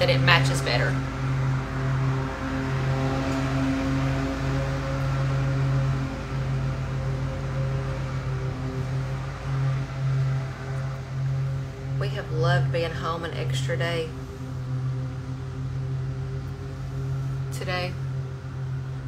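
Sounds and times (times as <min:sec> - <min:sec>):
steady low drone: 0:00.0 - 0:19.0.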